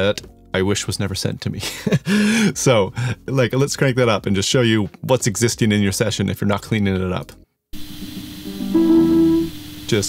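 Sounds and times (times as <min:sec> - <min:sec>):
hiss: 0:07.8 - 0:10.0
sustained guitar tone: 0:07.8 - 0:10.0.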